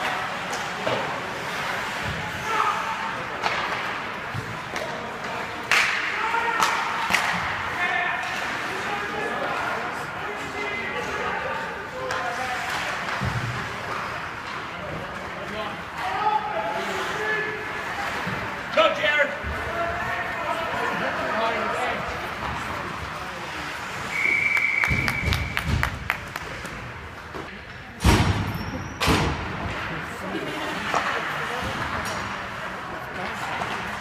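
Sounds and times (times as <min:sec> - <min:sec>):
voices and shouts: 0:02.3 - 0:03.2, 0:05.8 - 0:12.8, 0:15.9 - 0:18.0, 0:18.6 - 0:22.2
hockey stick clacks: 0:03.3 - 0:07.6, 0:12.0 - 0:15.3, 0:24.5 - 0:26.9, 0:30.7 - 0:32.5.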